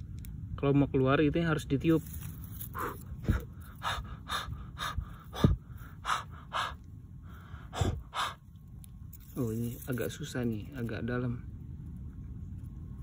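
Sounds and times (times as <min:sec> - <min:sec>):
short puffs of breath: 0:02.7 - 0:08.4.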